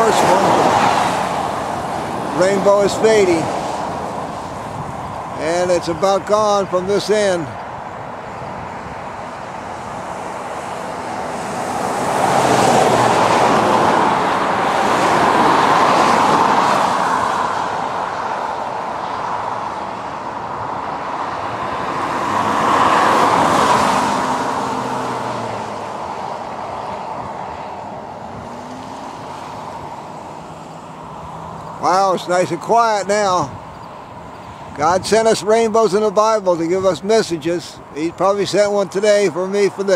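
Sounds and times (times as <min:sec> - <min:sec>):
road traffic passing: 0:00.0 - 0:39.9.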